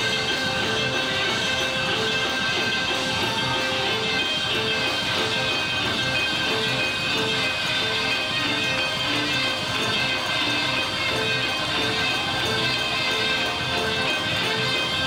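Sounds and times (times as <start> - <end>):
trombones and trumpets playing riffs: 0.0 - 15.0.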